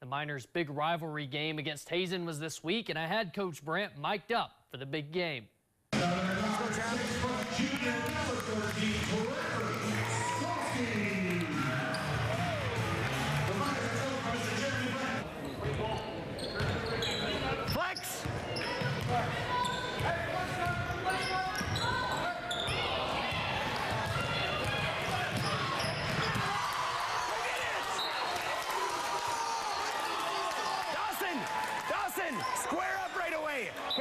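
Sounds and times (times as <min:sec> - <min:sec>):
crowd in a large hall: 0:05.9 - 0:34.0
players shouting: 0:07.9 - 0:15.2, 0:18.6 - 0:34.0
basketball bouncing on gym floor: 0:23.3 - 0:26.5.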